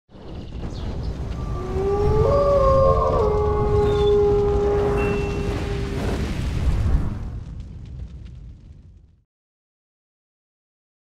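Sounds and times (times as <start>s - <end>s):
low rumble: 0.2s - 9.2s
wolves howling: 1.4s - 6.2s.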